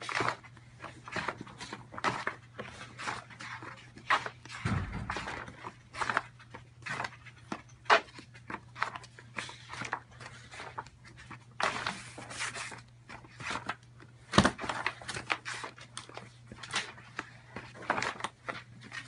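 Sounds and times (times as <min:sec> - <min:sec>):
pages flipping with swishing rustles: 0:00.0 - 0:19.0
dull low thump: 0:04.6 - 0:05.8.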